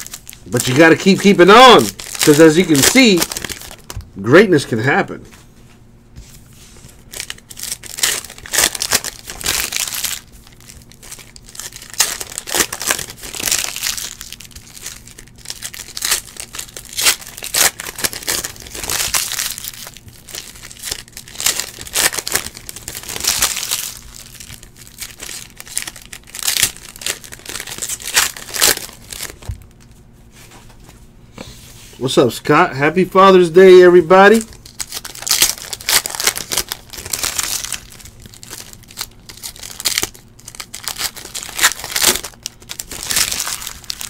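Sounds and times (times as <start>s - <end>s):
foil wrappers tearing and crinkling: 0.0s - 4.0s, 7.0s - 29.8s, 34.2s - 44.0s.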